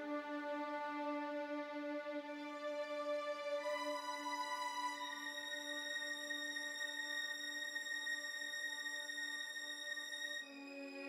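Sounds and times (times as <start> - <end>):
orchestral music sustained chords: 0.0 - 11.0.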